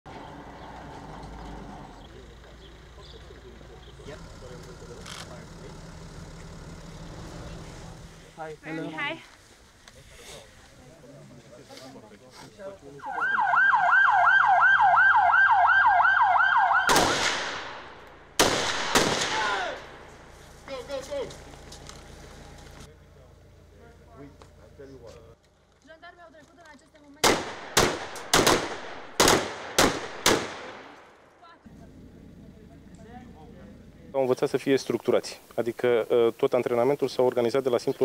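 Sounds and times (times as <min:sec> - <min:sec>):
car driving past: 0:00.1 - 0:08.5
siren in fast yelp: 0:13.0 - 0:16.9.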